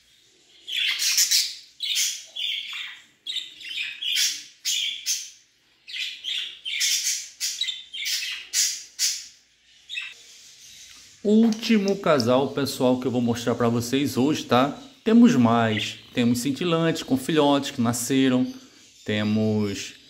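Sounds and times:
budgerigars chirping: 0:00.4 - 0:20.0.

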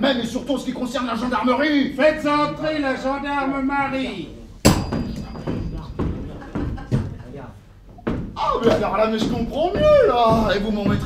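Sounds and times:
boot footsteps on wooden floor: 0:04.8 - 0:11.0.

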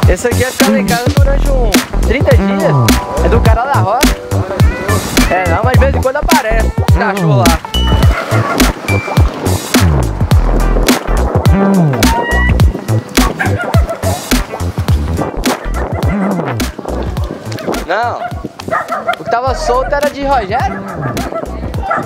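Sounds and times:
low thumps: 0:00.0 - 0:19.1
background music: 0:00.0 - 0:22.0.

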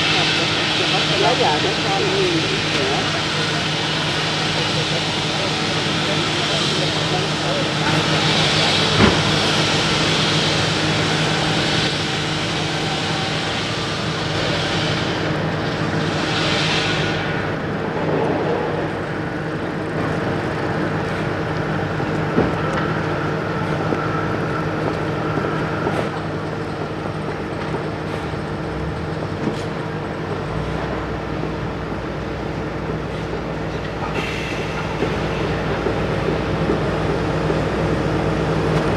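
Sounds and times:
hiss: 0:00.0 - 0:17.6, 0:34.0 - 0:36.6
low diesel engine hum: 0:00.0 - 0:38.9.

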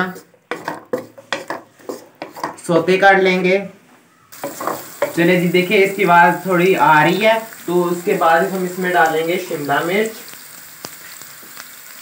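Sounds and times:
wooden spatula scraping pan: 0:00.0 - 0:02.6
onions frying in oil: 0:04.3 - 0:12.0.

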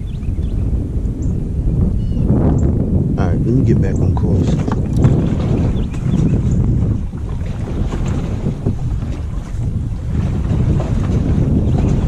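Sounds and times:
water noise around boat: 0:00.0 - 0:12.0
wind buffeting microphone: 0:00.0 - 0:12.0.

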